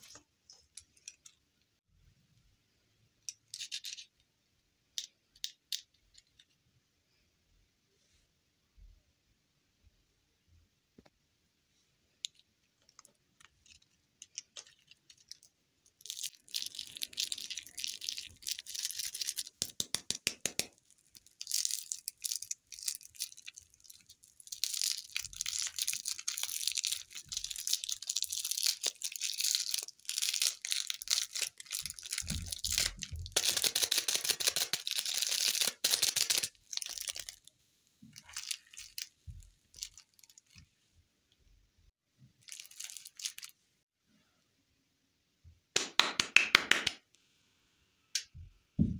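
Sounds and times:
plastic wrapper crinkling: 12.8s - 19.8s, 20.7s - 37.5s, 38.1s - 40.6s, 42.4s - 43.6s.

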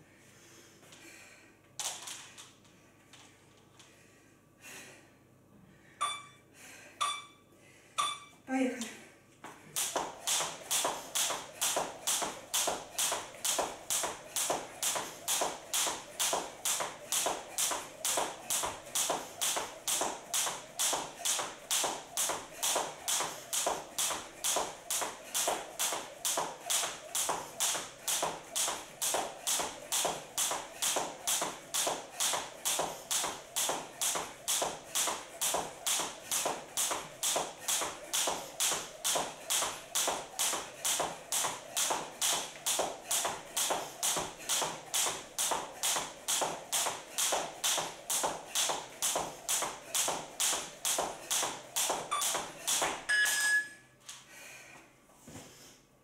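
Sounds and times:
jump rope slapping wooden floor: 1.8s - 2.6s, 9.4s - 53.1s.

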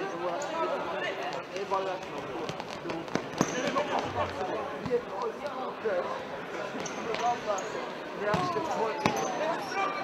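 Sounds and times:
voices of players and spectators: 0.0s - 10.0s.

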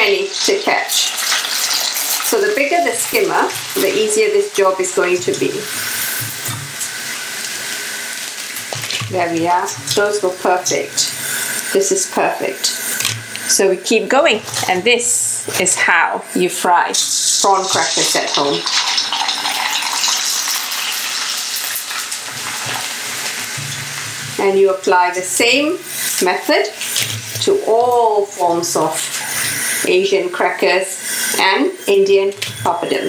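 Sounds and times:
oil sizzling in a wok: 0.0s - 14.2s, 15.1s - 33.0s.

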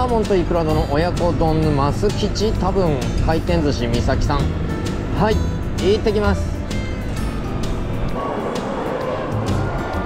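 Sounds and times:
background music with light beat: 0.0s - 10.0s
road and wind rumble: 0.0s - 10.0s.

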